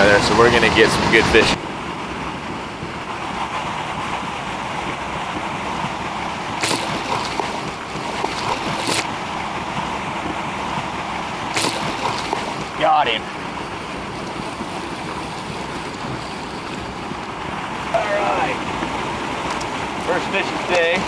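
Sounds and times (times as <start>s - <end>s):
flowing river water: 0.0s - 21.0s
wind: 0.0s - 21.0s.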